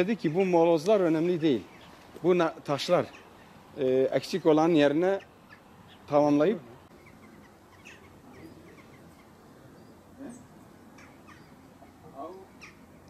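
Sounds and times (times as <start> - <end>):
faint outdoor background: 0.0 - 13.0
short bird calls: 1.6 - 2.3, 2.9 - 3.8, 5.1 - 13.0.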